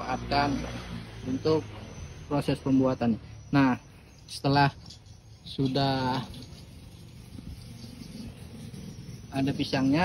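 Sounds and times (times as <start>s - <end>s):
faint insect chirping: 0.0s - 10.0s.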